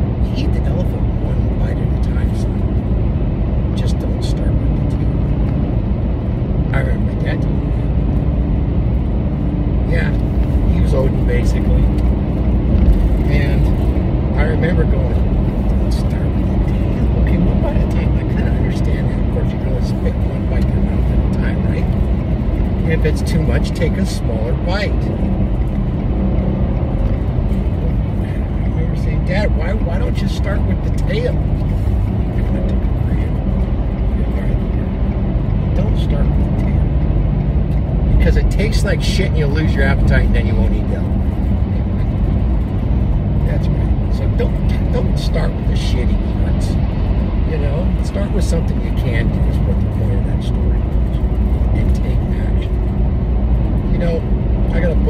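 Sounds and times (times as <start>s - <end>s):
car road and engine rumble: 0.0s - 55.0s
man talking: 0.2s - 2.7s, 3.8s - 5.2s, 6.7s - 7.8s, 9.9s - 12.1s, 13.2s - 22.0s, 22.8s - 25.2s, 27.7s - 31.5s, 32.3s - 33.4s, 34.1s - 35.0s, 35.7s - 37.0s, 38.1s - 41.2s, 43.4s - 52.8s, 53.9s - 55.0s.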